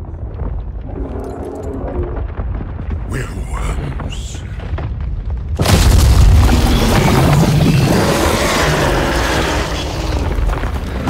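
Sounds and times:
crash of rock and earth: 0.0 - 3.7, 4.4 - 11.0
deep rumble: 0.0 - 11.0.

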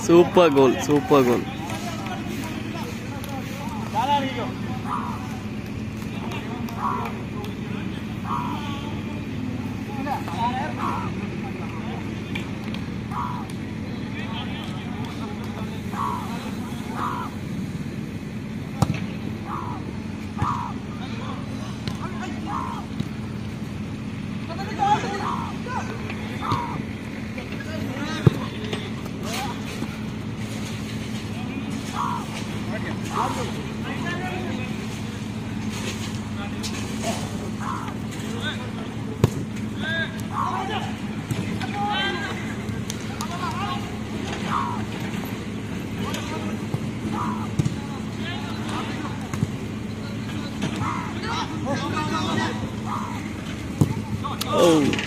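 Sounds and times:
players calling out: 0.0 - 55.0
steady low hum: 0.0 - 55.0
ball kicks: 28.2 - 28.8, 46.7 - 47.9, 53.7 - 54.6.

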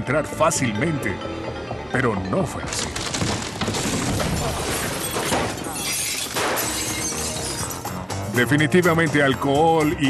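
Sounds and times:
glass bottles shattering: 2.7 - 7.9.

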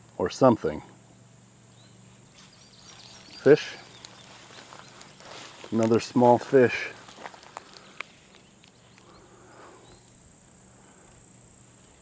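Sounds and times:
high-pitched insect drone: 0.0 - 12.0
light ticks: 4.0 - 4.2.

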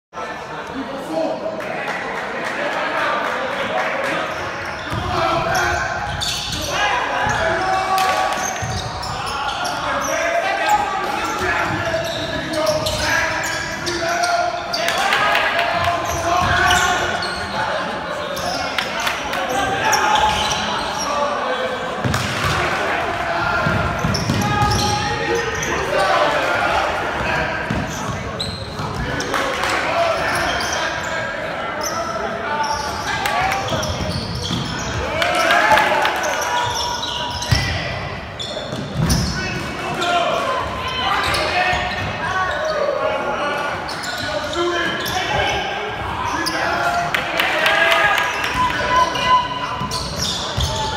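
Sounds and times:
voices echoing in a hall: 0.1 - 50.9
basketball bouncing on court: 16.1 - 16.8, 23.6 - 25.0, 27.6 - 28.1, 33.7 - 34.8.

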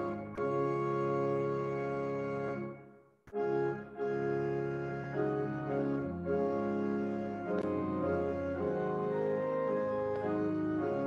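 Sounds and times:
pipe organ chords: 0.0 - 11.0.

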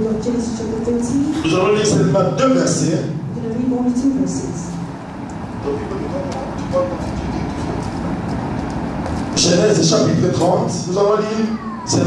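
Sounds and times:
low background rumble: 0.0 - 11.7.

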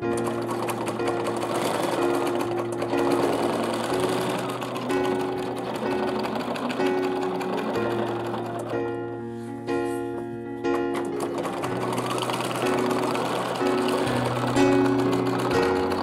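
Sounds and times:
sewing machine stitching fast: 0.0 - 9.0, 10.7 - 16.0.

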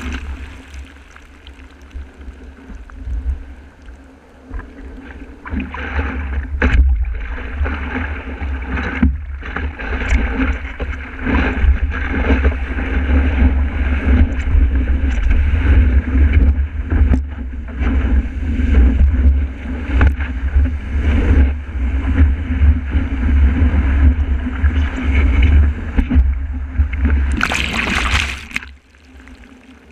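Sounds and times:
sharp splashes: 0.0 - 2.2, 27.2 - 29.9
breaking wave rushing water: 0.0 - 2.5, 27.2 - 29.9.

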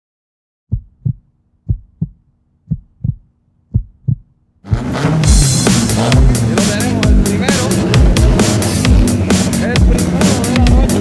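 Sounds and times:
heartbeat double thumps: 0.7 - 11.0
loud music: 4.7 - 11.0.

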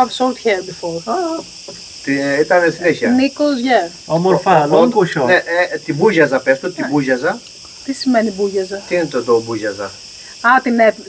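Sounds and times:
people talking: 0.0 - 1.5, 2.1 - 11.0
insects buzzing: 0.0 - 11.0.

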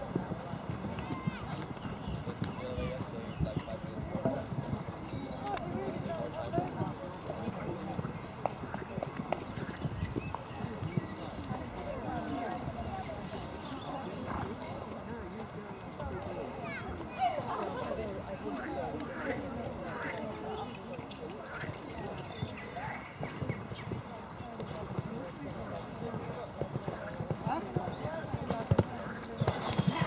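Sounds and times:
onlookers talking: 0.0 - 30.0
horse hoofbeats on sand: 26.6 - 30.0.

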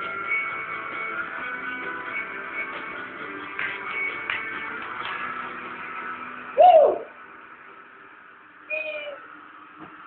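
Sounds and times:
high-pitched vocal calls: 8.7 - 9.3.

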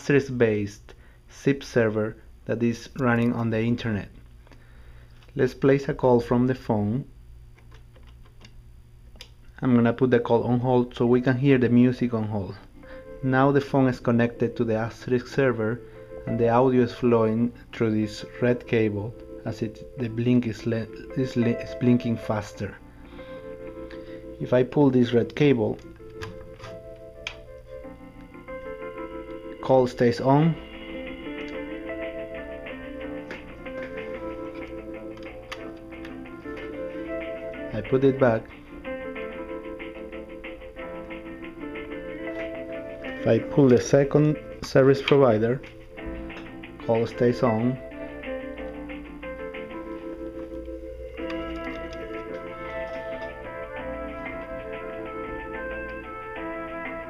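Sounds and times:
low steady hum: 0.0 - 57.0
hold music from a phone: 30.6 - 57.0.

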